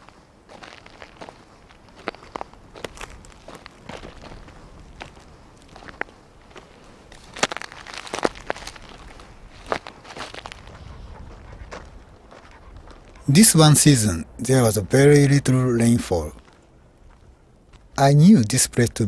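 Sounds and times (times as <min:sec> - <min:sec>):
footsteps crunching on gritty ground: 0:00.0 - 0:14.2, 0:15.0 - 0:18.0.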